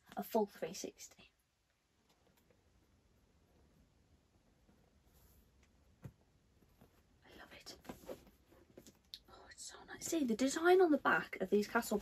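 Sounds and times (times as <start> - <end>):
faint whispering: 7.2 - 8.2, 9.2 - 10.8.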